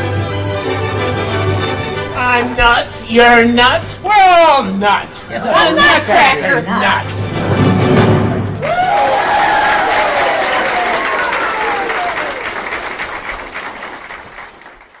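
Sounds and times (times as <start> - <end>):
audience applause: 8.6 - 15.0.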